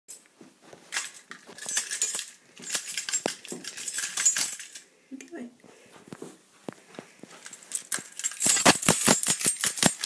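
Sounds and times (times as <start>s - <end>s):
crinkly rustling and clinking: 0.1s - 4.9s, 6.8s - 10.0s.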